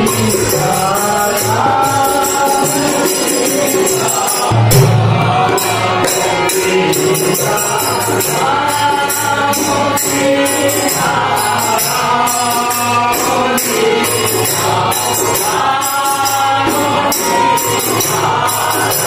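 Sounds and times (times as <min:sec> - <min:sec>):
barrel drum: 0:00.0 - 0:08.7
harmonium: 0:00.0 - 0:19.0
jingling hand percussion: 0:00.0 - 0:19.0
men singing in chorus: 0:00.0 - 0:19.0.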